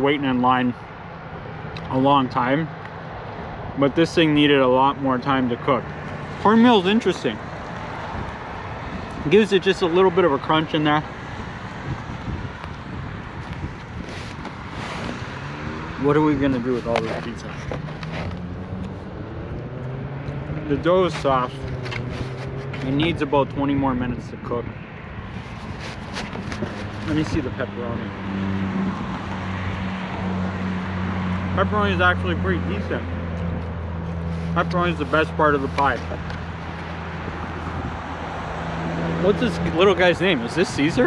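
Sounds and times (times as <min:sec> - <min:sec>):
car park background noise: 0:00.0 - 0:41.0
vehicle engine humming: 0:00.0 - 0:41.0
wind noise on microphone: 0:07.7 - 0:10.2, 0:11.0 - 0:31.6, 0:33.5 - 0:41.0.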